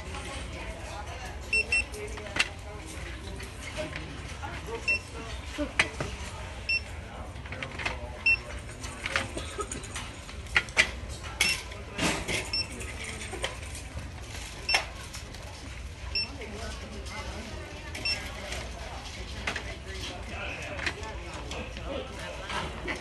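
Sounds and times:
barcode scanner beeps: 1.5 - 2.0, 4.8 - 5.2, 6.7 - 7.0, 8.2 - 8.5, 12.4 - 12.8, 14.6 - 14.9, 16.2 - 16.4, 18.0 - 18.3.

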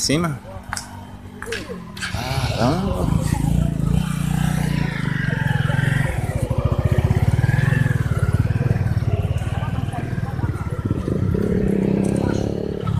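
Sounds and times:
small motorcycle engine running: 1.8 - 12.9.

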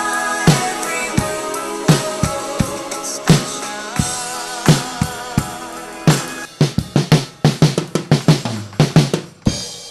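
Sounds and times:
acoustic drum kit: 0.0 - 9.9
recorded song: 0.0 - 9.9.

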